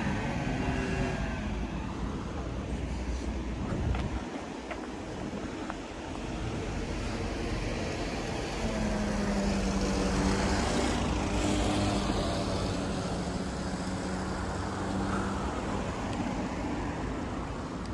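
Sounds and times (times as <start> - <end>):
road traffic noise: 0.0 - 17.9.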